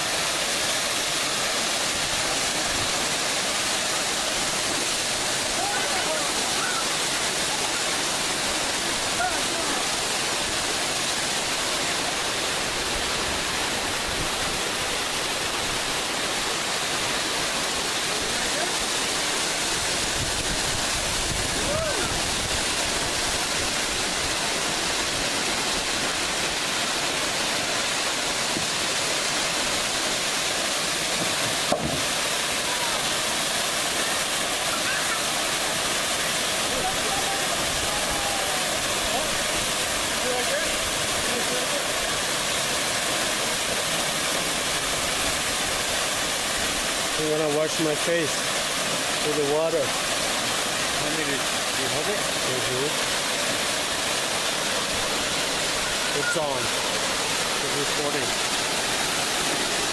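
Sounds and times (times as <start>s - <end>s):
waterfall rushing: 0.0s - 59.9s.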